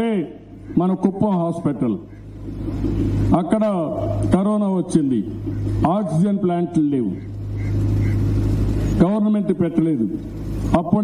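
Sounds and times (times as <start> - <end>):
speech: 0.0 - 2.1, 3.3 - 7.2, 9.0 - 11.0
low rumble with hum: 0.0 - 11.0.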